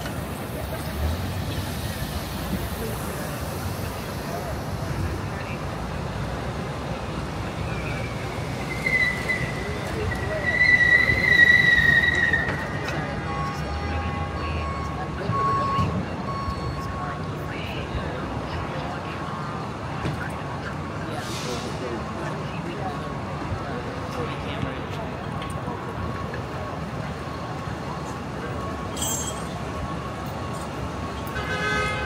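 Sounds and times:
street traffic noise: 0.0 - 32.0
long high-pitched squeal: 7.7 - 13.0.

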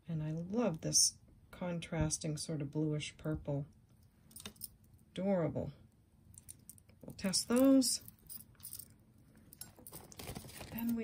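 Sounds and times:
small metal jewelry clinking: 4.3 - 4.8, 6.3 - 11.0
plastic bag rustling: 9.6 - 11.0.

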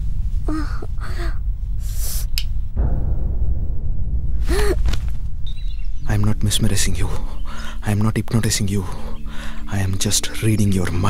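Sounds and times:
low rumbling drone: 0.0 - 11.0
woman gasping: 0.5 - 2.3, 4.4 - 4.9.

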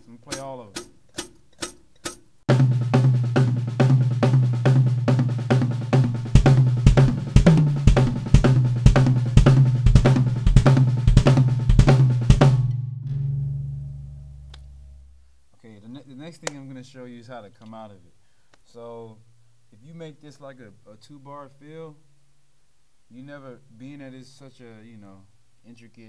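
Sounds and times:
drum kit groove: 0.0 - 15.3
heavy bass drum strokes: 2.5 - 15.3.

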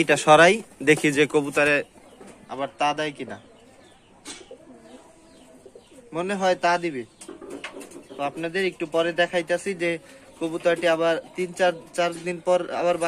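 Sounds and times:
pigeons cooing: 0.0 - 13.0.

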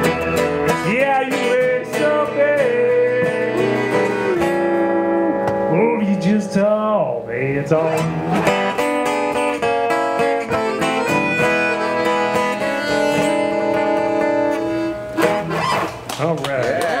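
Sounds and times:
acoustic guitar strummed: 0.0 - 16.1
accordion sustained chords: 7.8 - 15.6.

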